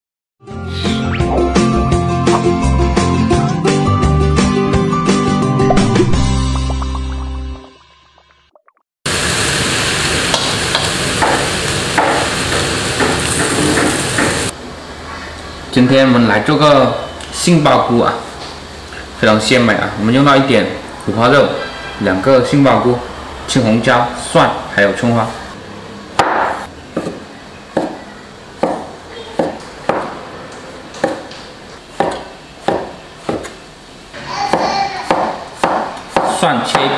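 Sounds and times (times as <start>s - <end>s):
vegetables sizzling in a wok: 9.1s - 15.7s
cleaver chopping on wooden board: 26.2s - 27.2s, 27.8s - 28.0s, 28.6s - 30.2s, 31.0s - 31.3s, 32.0s - 33.6s, 34.5s - 36.9s.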